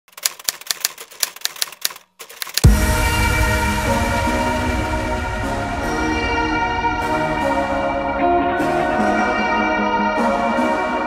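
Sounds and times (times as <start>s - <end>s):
typewriter keys clacking: 0.0s - 2.6s.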